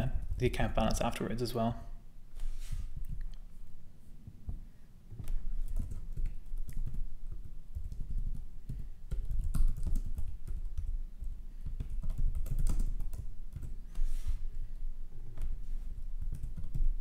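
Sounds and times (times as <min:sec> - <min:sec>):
keyboard typing: 0:05.1 - 0:13.8, 0:15.3 - 0:17.0.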